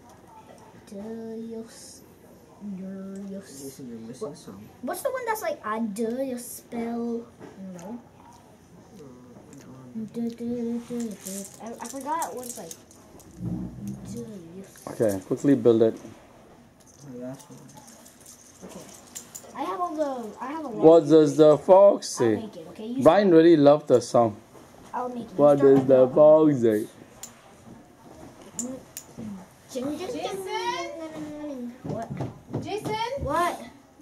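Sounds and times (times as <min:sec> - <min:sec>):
metal rods and balls clicking together: 0:11.0 - 0:16.0, 0:16.8 - 0:19.6.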